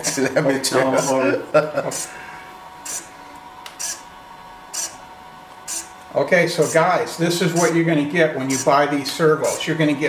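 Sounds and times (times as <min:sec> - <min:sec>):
servo motor whirring: 0:00.8 - 0:01.3, 0:01.9 - 0:02.2, 0:02.8 - 0:04.1, 0:04.7 - 0:05.0, 0:05.6 - 0:06.0, 0:07.5 - 0:07.8.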